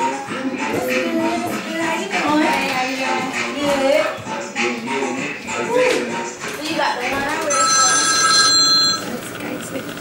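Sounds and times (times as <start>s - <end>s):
electronic telephone ringing: 7.4s - 10.0s.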